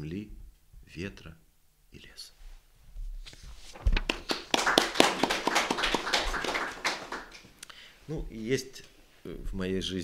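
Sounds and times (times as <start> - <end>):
audience applauding: 4.0 - 7.5.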